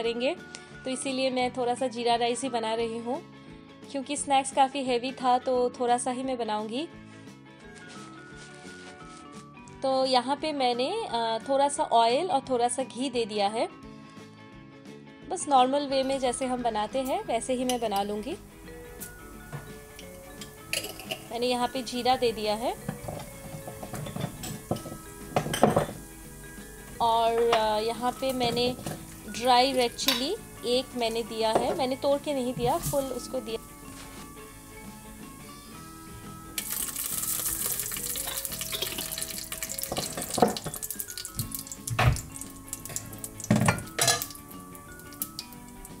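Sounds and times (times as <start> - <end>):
faint background music: 0.0 - 46.0
spices sizzling in hot oil: 16.1 - 46.0
metal pots and utensils clinking: 17.0 - 18.3, 18.9 - 34.3, 36.6 - 46.0.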